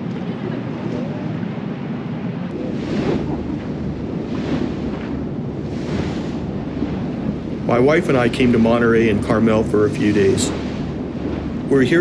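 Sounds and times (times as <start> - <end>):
low rumble: 0.0 - 12.0
sea water washing around boat: 0.0 - 12.0
wind buffeting microphone: 0.0 - 12.0.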